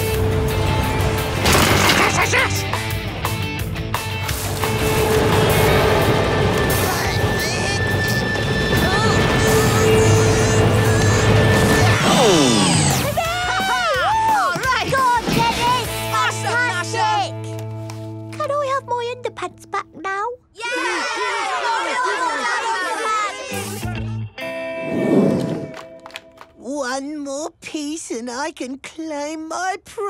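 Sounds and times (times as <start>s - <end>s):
crashing and rumbling effects: 1.0s - 2.3s, 4.4s - 12.9s
wavering falling and rising glides: 24.7s - 25.9s.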